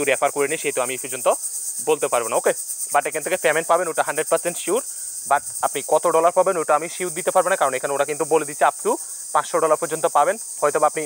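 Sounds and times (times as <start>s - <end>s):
man talking: 0.0s - 11.0s
pulsing high-pitched hiss: 0.0s - 11.0s.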